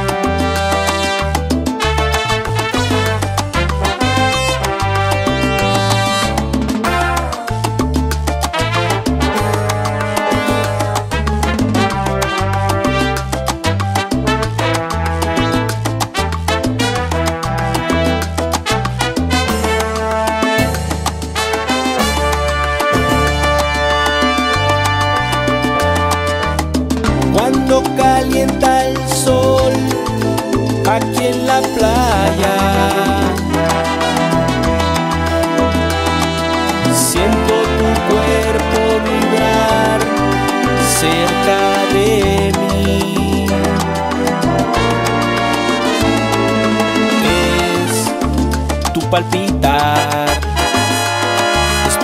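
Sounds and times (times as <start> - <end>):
moving bass line: 0.0 - 52.0
salsa music: 0.0 - 52.0
steady percussion: 0.0 - 52.0.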